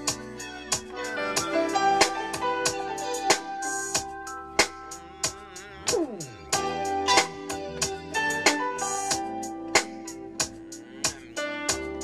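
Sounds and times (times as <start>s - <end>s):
held keyboard chords: 0.0s - 12.0s
drum beat: 5.9s - 6.4s.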